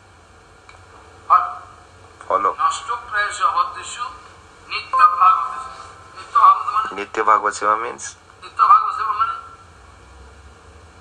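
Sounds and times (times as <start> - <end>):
low background hiss: 0.0 - 11.0.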